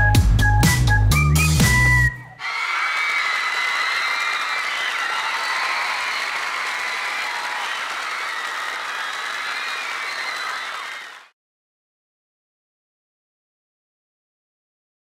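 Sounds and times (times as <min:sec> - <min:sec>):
high-pitched shouts: 0:02.4 - 0:11.2
audience applauding and cheering: 0:02.4 - 0:11.3.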